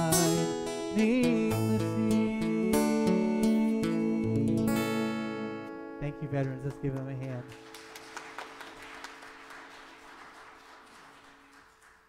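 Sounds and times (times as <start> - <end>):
acoustic guitar chord ringing: 0.0 - 9.9
people clapping: 6.4 - 12.0.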